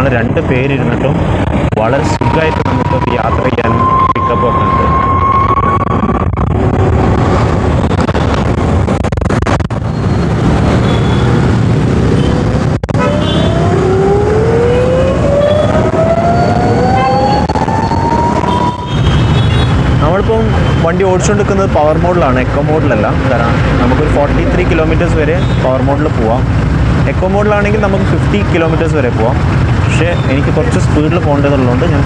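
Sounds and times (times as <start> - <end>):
wind and road noise: 0.0 - 32.0.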